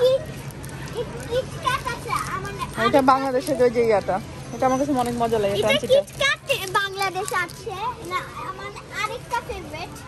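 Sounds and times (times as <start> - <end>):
girl speaking: 5.6 - 10.0.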